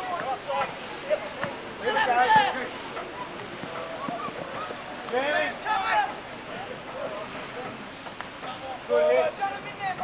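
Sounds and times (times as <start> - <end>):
light wind: 0.0 - 10.0
spectators talking: 0.0 - 10.0.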